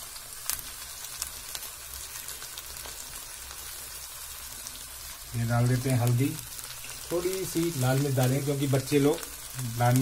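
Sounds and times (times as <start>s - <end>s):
vegetables sizzling in hot oil: 0.0s - 10.0s.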